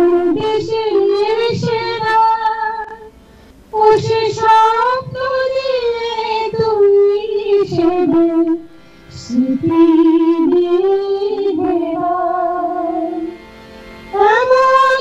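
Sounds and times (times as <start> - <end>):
woman singing into a microphone: 0.0 - 13.4, 14.1 - 15.0.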